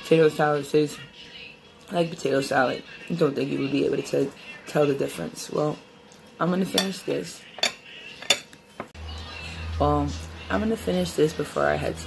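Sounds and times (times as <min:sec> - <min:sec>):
cutlery clinking on plate: 0:06.7 - 0:08.9.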